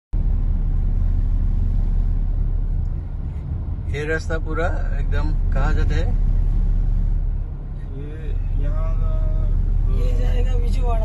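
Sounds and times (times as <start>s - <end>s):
car interior road rumble: 0.1s - 11.0s.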